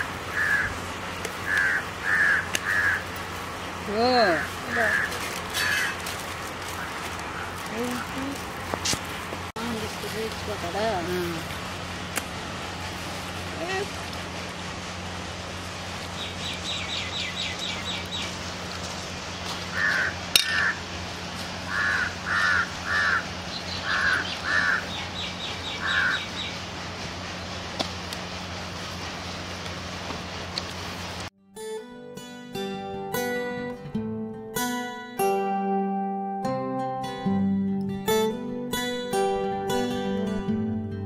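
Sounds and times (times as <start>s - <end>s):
crows cawing: 0.0s - 0.8s, 1.4s - 3.2s, 4.3s - 7.6s, 19.7s - 20.9s, 21.6s - 25.1s, 25.7s - 26.4s
outdoor background noise: 0.0s - 31.4s
plucked-string music: 31.4s - 41.0s.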